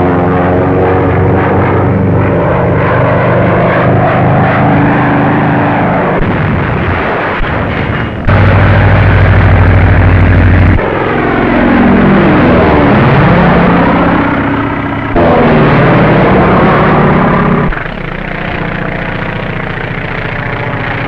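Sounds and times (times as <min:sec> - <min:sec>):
biplane engine droning: 0:00.0 - 0:21.0
plane passing: 0:00.0 - 0:21.0.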